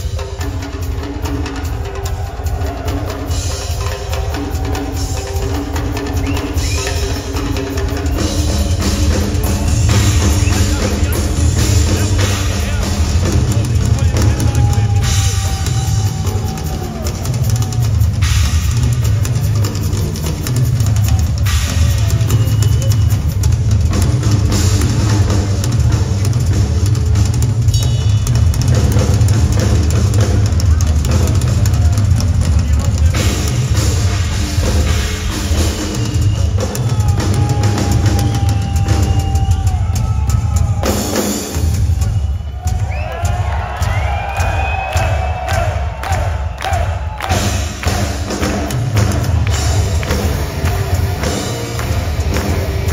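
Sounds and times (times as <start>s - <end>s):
crowd cheering and whistling: 0.0s - 52.9s
heavy metal band playing live: 0.0s - 52.9s
pounding drums: 0.0s - 52.9s.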